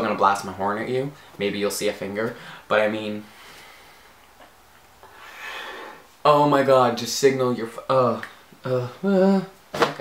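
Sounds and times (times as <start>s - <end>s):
person sighing: 5.1s - 6.1s, 8.6s - 9.6s.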